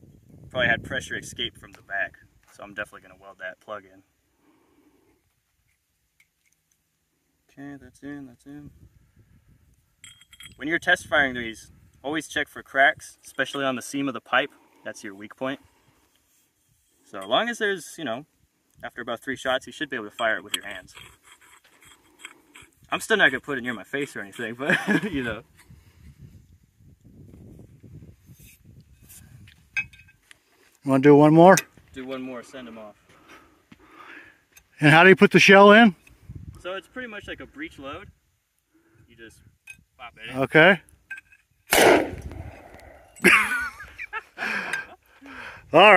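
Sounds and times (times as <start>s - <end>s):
metallic clink: 10.0s - 10.8s, 29.7s - 30.2s, 41.1s - 41.5s
pipes rubbing: 20.1s - 24.6s.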